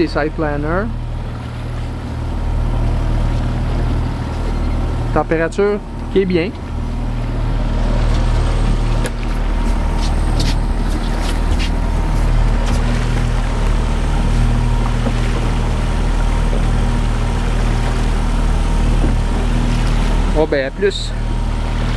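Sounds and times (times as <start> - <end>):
outboard motor droning: 0.0 - 21.9.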